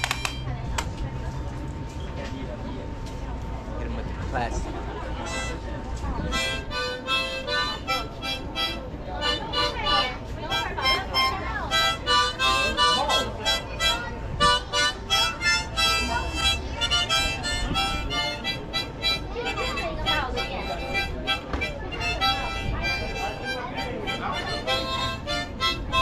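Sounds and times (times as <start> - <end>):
passers-by talking: 0.0 - 26.0
harmonica playing: 5.2 - 26.0.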